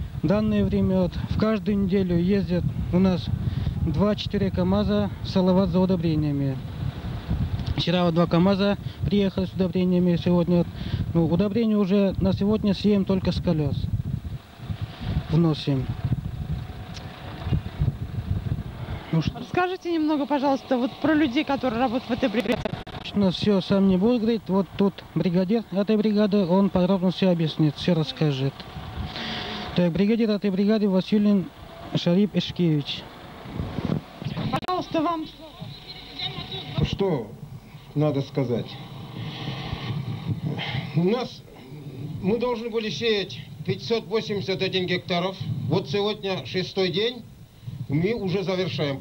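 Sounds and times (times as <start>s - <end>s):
wind buffeting microphone: 0.0s - 19.6s, 20.9s - 34.7s, 35.6s - 49.0s
microphone handling noise: 6.6s - 7.8s, 13.8s - 19.1s, 22.4s - 23.2s, 33.5s - 34.6s, 38.8s - 42.4s.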